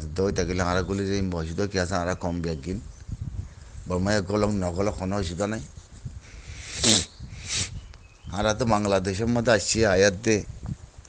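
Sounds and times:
man breathing close to microphone: 0:06.2 - 0:07.8.

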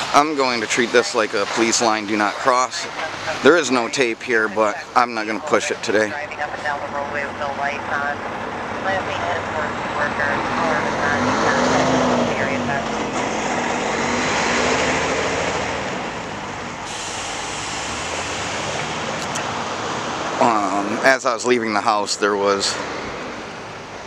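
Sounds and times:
motor vehicles passing: 0:00.0 - 0:24.0.

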